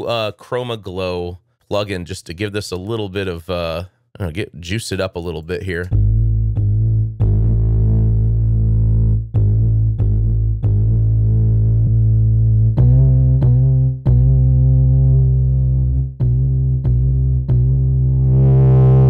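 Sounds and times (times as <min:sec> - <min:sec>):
sampled throat sound bass line: 0:05.8 - 0:19.0.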